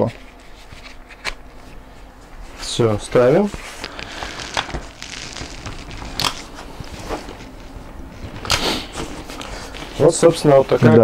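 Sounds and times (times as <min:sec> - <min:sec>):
handling rustle: 0:00.0 - 0:11.0.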